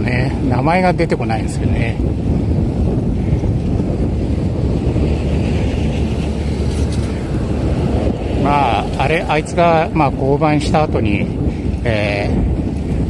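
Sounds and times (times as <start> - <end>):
road traffic passing: 0.0 - 13.0
wind rush on microphone: 0.0 - 13.0.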